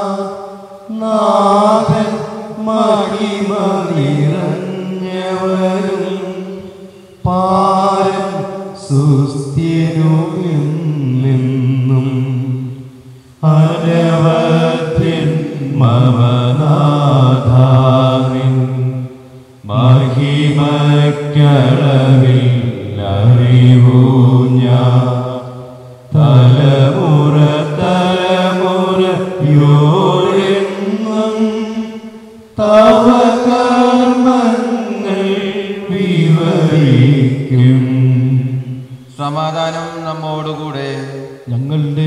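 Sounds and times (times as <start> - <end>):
man chanting a prayer: 0.0 - 32.0, 32.6 - 42.0.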